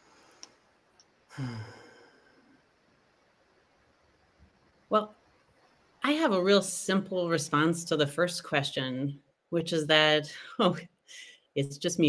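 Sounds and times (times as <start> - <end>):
person sighing: 1.3 - 2.4.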